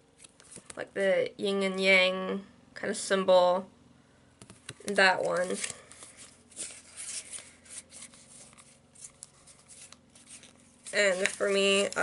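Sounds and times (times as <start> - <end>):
cards rustling and tapping: 0.2 - 0.8, 4.4 - 12.0.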